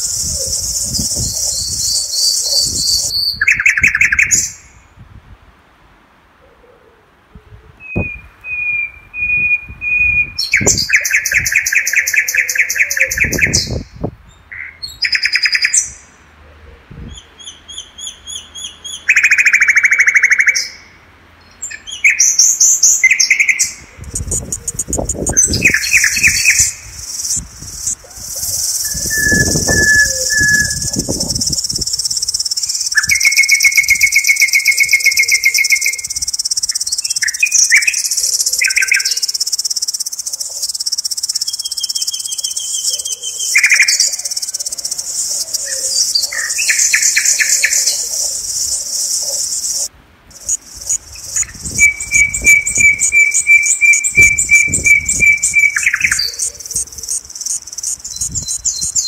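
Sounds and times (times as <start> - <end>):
birds singing: 0.0 - 4.8, 7.8 - 16.2, 17.0 - 59.0
high insect buzz: 24.0 - 33.8, 38.0 - 46.3, 46.9 - 52.5.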